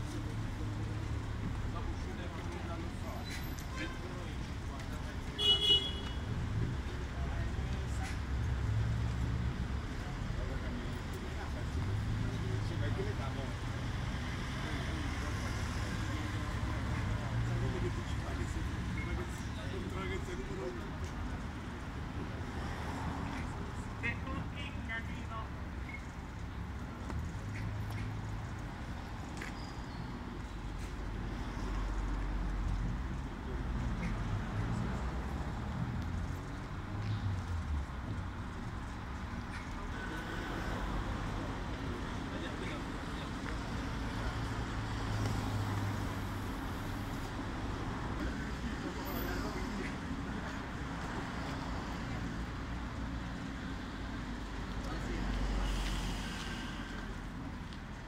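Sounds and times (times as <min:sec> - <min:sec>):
low traffic rumble: 0:00.0 - 0:58.0.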